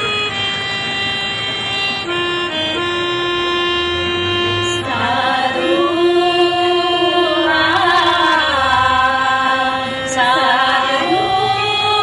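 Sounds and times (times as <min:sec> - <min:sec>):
electronic keyboard chords: 0:00.0 - 0:09.3.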